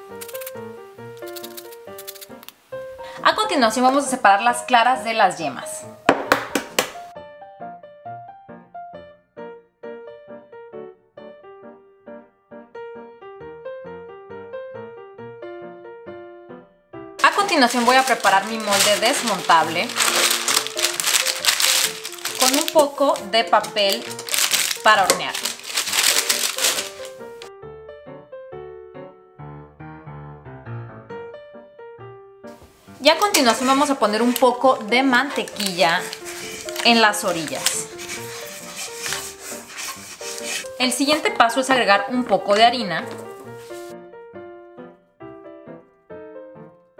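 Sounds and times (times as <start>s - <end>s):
light piano music: 0.0s - 46.9s
egg shell cracked against bowl: 0.1s - 0.6s, 1.2s - 2.6s
parchment paper crinkling: 17.2s - 27.5s, 33.0s - 41.4s, 42.4s - 43.9s.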